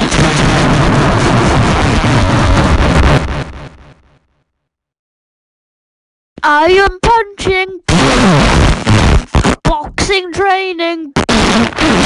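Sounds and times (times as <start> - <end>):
explosion with deep rumble: 0.0 - 3.9.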